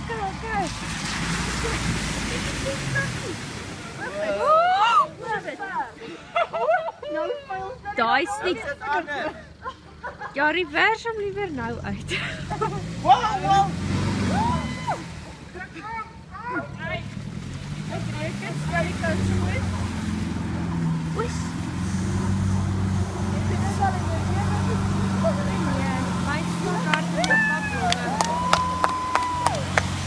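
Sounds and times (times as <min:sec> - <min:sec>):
diesel engine revving under load: 0:00.0 - 0:04.4, 0:07.8 - 0:30.0
water sloshing: 0:00.0 - 0:06.8, 0:07.6 - 0:30.0
people shouting: 0:04.0 - 0:05.4, 0:13.0 - 0:16.7, 0:26.5 - 0:29.9.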